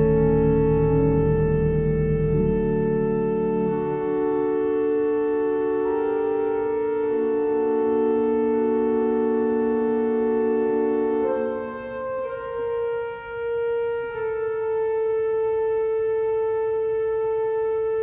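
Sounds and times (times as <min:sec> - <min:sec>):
pipe organ sustained chords: 0:00.0 - 0:18.0.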